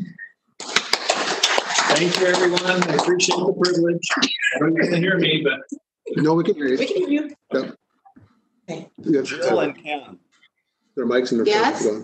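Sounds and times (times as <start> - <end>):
small group applauding: 0.6 - 4.6.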